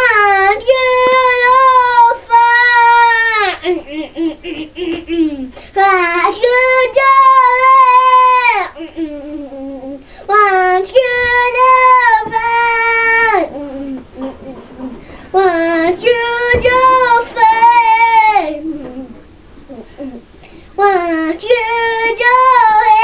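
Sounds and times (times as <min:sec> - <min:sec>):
boy singing unaccompanied: 0:00.0 - 0:03.7, 0:04.9 - 0:20.2, 0:20.8 - 0:23.0.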